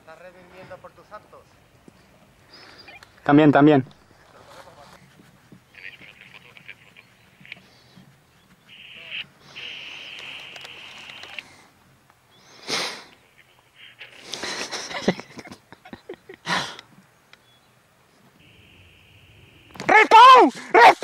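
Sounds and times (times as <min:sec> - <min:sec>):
tinny voice over walkie-talkie: 0:05.7 - 0:07.7, 0:08.7 - 0:11.6, 0:13.2 - 0:14.2
short bursts of radio noise: 0:05.7 - 0:08.0, 0:08.6 - 0:11.7, 0:12.5 - 0:14.9, 0:18.4 - 0:21.0.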